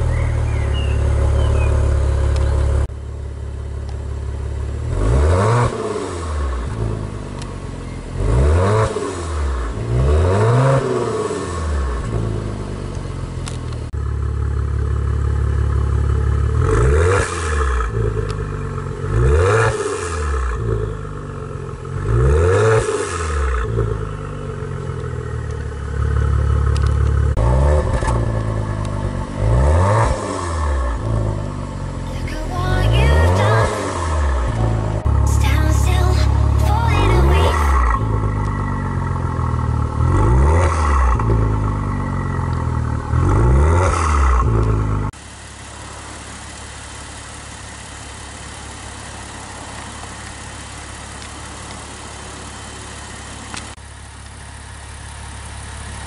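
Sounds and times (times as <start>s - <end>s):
car exhaust idling: 0.0s - 5.1s, 12.0s - 17.0s, 23.6s - 27.4s, 33.8s - 35.3s, 38.0s - 43.2s, 44.4s - 56.0s
engine revving: 4.8s - 7.0s, 8.1s - 12.6s, 16.6s - 18.2s, 26.1s - 31.5s, 37.2s - 45.1s.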